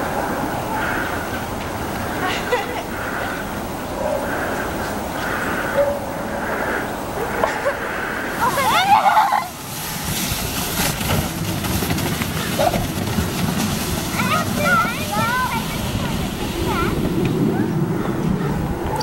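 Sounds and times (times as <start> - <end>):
low rushing noise: 0.0 - 19.0
children shouting: 8.3 - 9.6.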